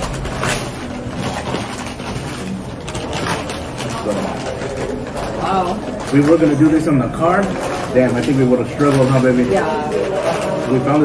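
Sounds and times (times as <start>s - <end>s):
dining room din: 0.0s - 11.0s
paper crinkling and rustling: 0.0s - 11.0s.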